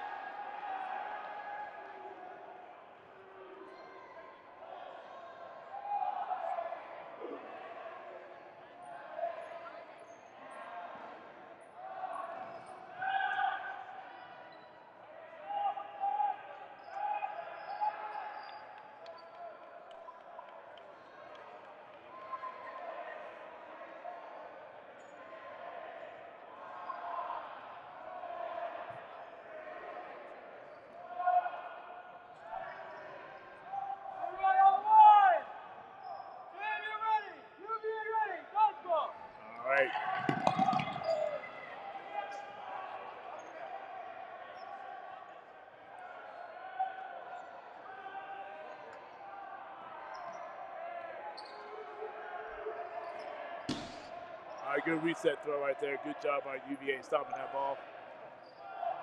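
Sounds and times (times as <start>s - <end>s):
players calling in echoing hall: 0.0s - 59.0s
balls bouncing on wooden floor: 40.0s - 41.4s.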